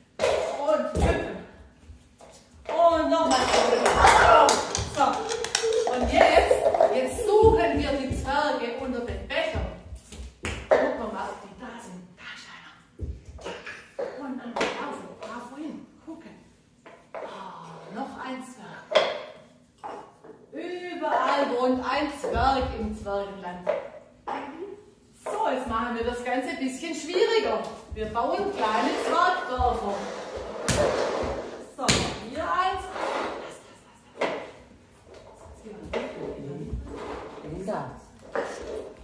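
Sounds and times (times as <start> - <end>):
bare feet hopping on wooden floor: 5.9 - 10.7.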